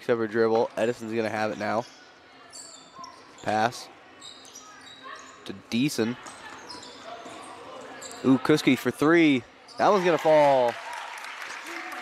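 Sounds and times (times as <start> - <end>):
basketball game on hardwood court: 0.0 - 12.0.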